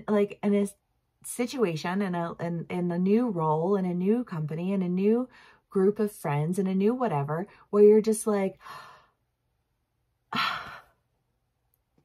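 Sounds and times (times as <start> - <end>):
woman sighing: 10.3 - 11.0.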